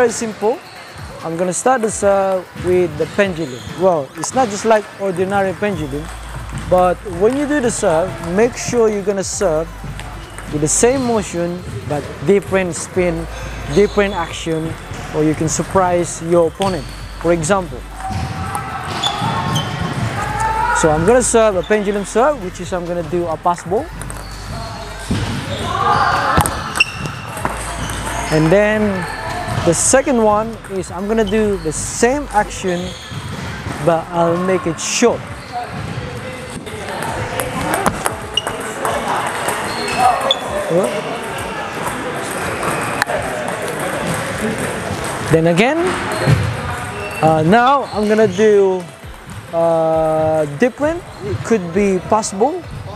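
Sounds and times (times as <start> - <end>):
voices in a hall: 0.0 - 52.9
table tennis balls clicking: 9.4 - 12.4, 13.1 - 33.1, 36.5 - 46.3
table tennis ball clicks: 26.2 - 28.5.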